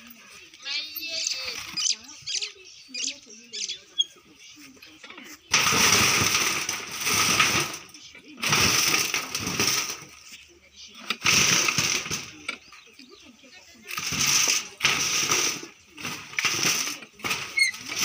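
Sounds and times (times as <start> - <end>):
shovel scraping soil: 4.6 - 12.5, 13.8 - 18.0.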